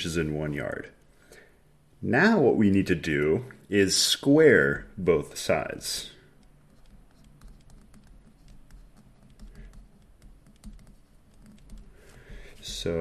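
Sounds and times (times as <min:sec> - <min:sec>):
stylus tapping tablet screen: 0:06.4 - 0:13.0.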